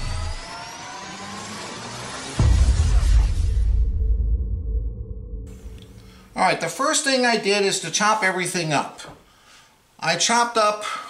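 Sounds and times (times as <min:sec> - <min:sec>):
noisy riser with gliding tones: 0:00.0 - 0:06.4
low rumble: 0:02.4 - 0:06.4.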